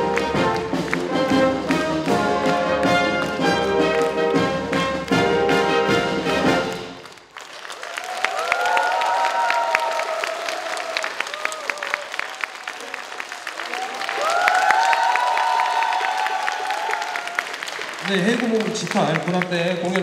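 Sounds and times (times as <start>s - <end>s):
brass band playing: 0.0s - 7.2s
audience applauding: 0.0s - 20.0s
long drawn-out cheers: 7.4s - 18.6s.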